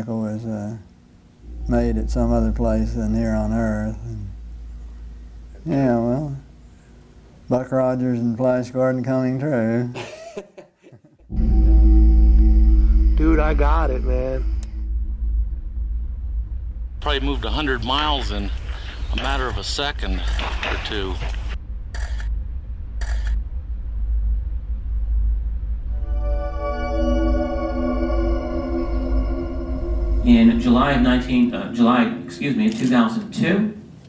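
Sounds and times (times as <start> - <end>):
deep steady drone: 0.0 - 9.0, 11.3 - 33.2
steady low rumble: 0.0 - 9.0, 11.3 - 34.0
man chuckling: 9.9 - 11.3.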